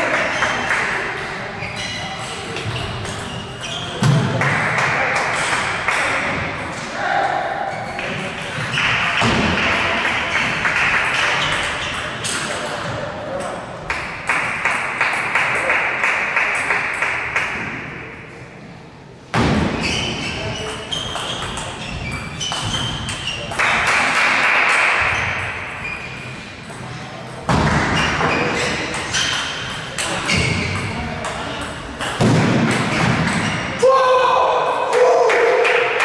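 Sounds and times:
people talking: 0.0s - 13.9s, 26.6s - 33.1s.

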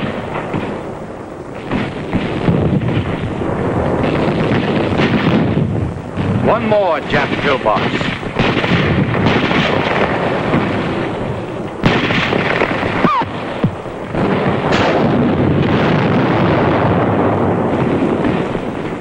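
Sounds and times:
gunfire: 0.0s - 0.9s, 1.6s - 19.0s
explosion blasts: 0.0s - 19.0s
heavy battle rumble: 0.0s - 19.0s.

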